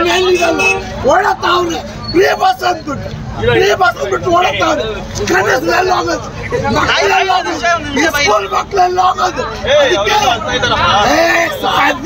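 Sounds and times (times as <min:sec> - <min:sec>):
voices talking: 0:00.0 - 0:12.0
man shouting and wailing: 0:03.5 - 0:12.0.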